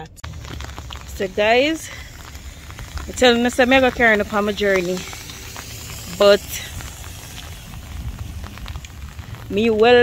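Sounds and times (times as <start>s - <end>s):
low rumble: 0.0s - 10.0s
rain pattering on an umbrella: 0.0s - 10.0s.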